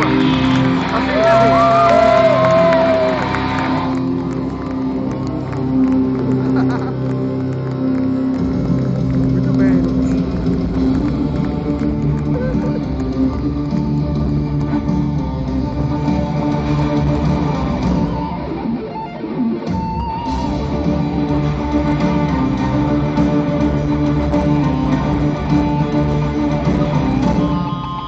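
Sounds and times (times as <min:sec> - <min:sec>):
live rock band: 0:00.0 - 0:28.0.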